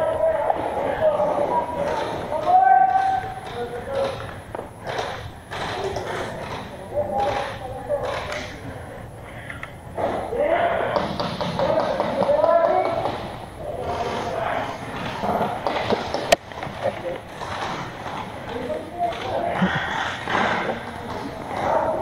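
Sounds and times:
people talking and calling out: 0.0s - 22.0s.

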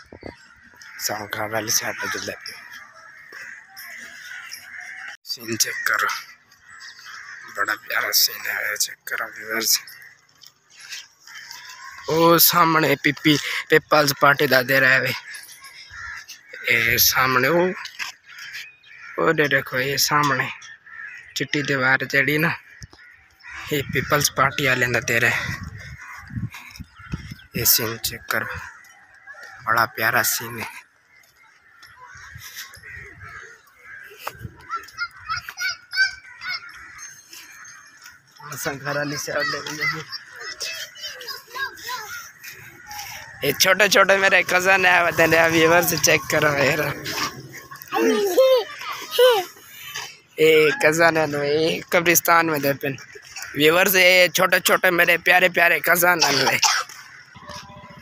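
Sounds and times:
background bird chatter: 0.0s - 58.0s
man speaking: 1.0s - 2.6s, 5.3s - 6.3s, 23.7s - 25.7s, 27.5s - 28.6s, 43.0s - 49.4s, 50.4s - 56.8s.

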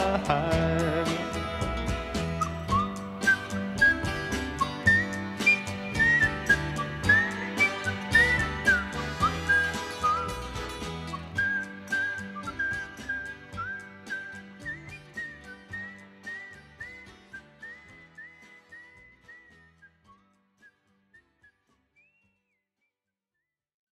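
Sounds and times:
drums and bass: 0.0s - 18.2s
whistled melody: 0.0s - 23.5s.

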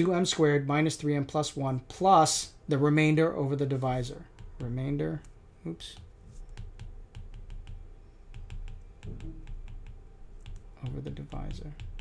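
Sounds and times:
stylus clicking on glass screen: 4.3s - 12.0s.

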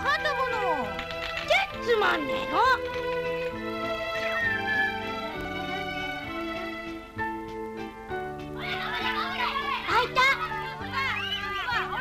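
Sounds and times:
background music with held notes: 0.0s - 12.0s
children calling out at play: 8.6s - 12.0s.

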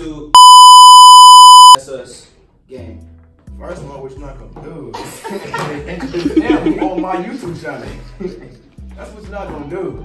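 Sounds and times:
high-pitched censor bleep: 0.4s - 1.8s.

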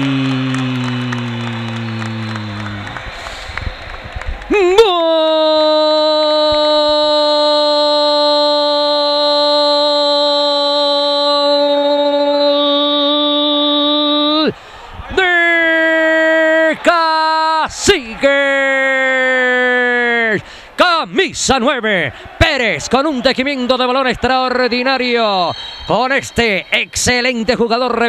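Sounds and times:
man shouting goal call: 0.0s - 3.0s, 4.5s - 14.5s, 15.1s - 28.0s.

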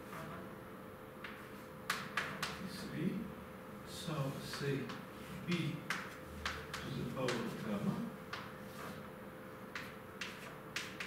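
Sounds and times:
chalk tapping on blackboard: 1.2s - 2.6s, 4.4s - 9.0s, 9.7s - 11.0s.

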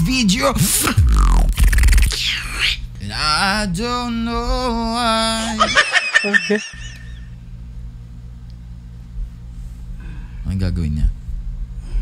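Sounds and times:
faint low hum: 0.0s - 12.0s
man laughing: 5.2s - 7.3s.

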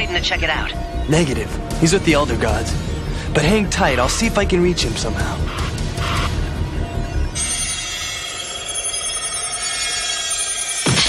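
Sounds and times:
shimmering electronic magic tones: 0.8s - 11.0s.

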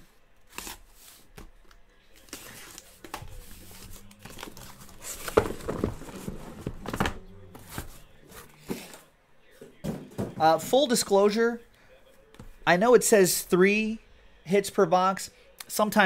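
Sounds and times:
cardboard rustling and scraping: 2.2s - 9.1s.

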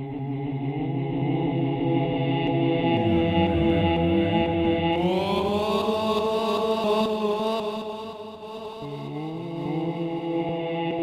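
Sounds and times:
synthesizer drone: 2.9s - 5.8s.

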